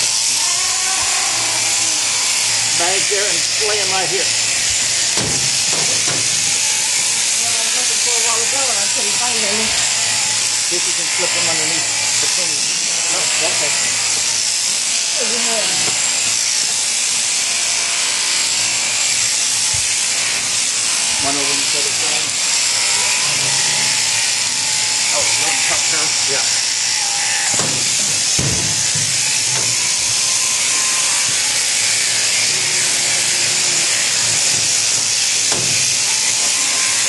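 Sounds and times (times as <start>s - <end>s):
electric shearing handpiece running: 0.0s - 37.0s
knocks: 5.2s - 6.4s, 27.5s - 30.0s, 35.5s - 35.9s.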